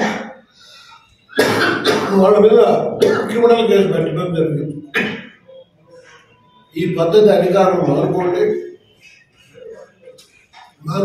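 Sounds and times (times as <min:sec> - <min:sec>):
man coughing: 0:01.3 - 0:03.4
man speaking: 0:02.1 - 0:04.9, 0:06.6 - 0:08.8, 0:10.8 - 0:11.0.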